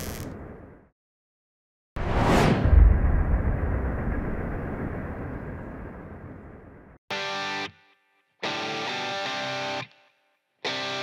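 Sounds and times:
downward whoosh: 0:02.0 - 0:04.6
deep boom: 0:02.0 - 0:06.4.

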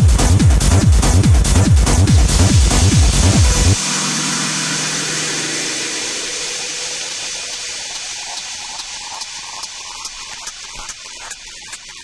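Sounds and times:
hissing noise wash: 0:02.1 - 0:12.0
low held tone: 0:02.6 - 0:08.5.

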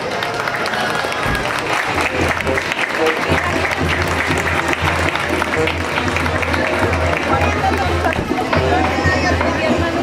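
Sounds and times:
crowd clapping: 0:00.0 - 0:09.4
music: 0:00.2 - 0:10.0.

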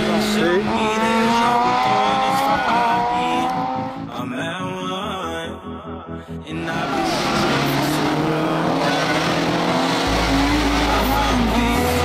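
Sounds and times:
rally car engine at high revs: 0:00.0 - 0:04.1, 0:06.7 - 0:12.0.

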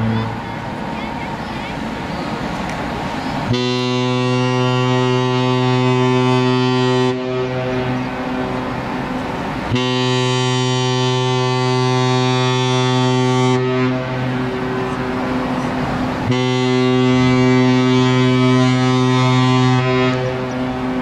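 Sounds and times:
ship's horn deep blasts: 0:03.5 - 0:21.0.

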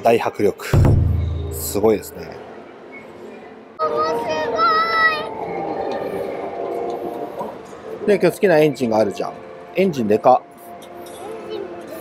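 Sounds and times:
murmur of visitors: 0:00.0 - 0:12.0.

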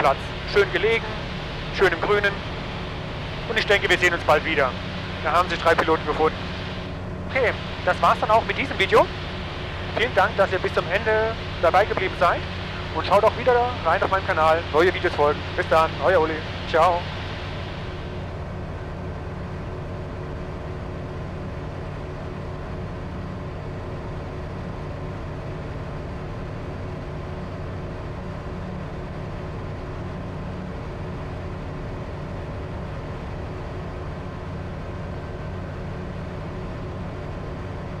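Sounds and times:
light aircraft engine and propeller droning: 0:00.0 - 0:38.0.

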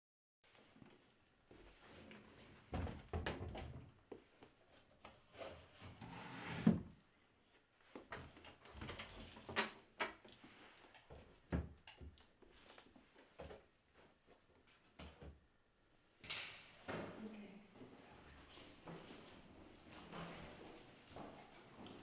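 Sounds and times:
wooden door clicks and knocks: 0:02.7 - 0:03.9.

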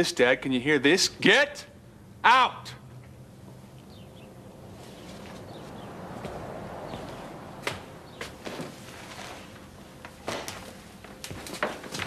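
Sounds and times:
footsteps on hard floor: 0:06.2 - 0:09.4.

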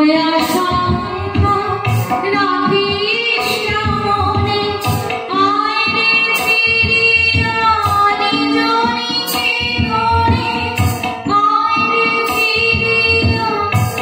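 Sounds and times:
harmonium: 0:00.0 - 0:14.0
percussion beat: 0:00.0 - 0:14.0
woman singing: 0:00.0 - 0:14.0.

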